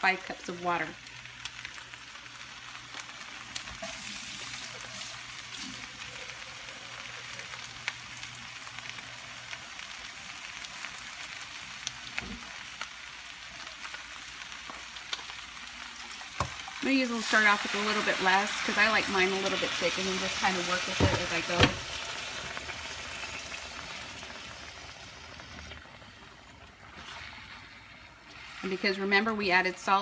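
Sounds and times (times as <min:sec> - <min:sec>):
meat sizzling in a pan: 0:00.2 - 0:30.0.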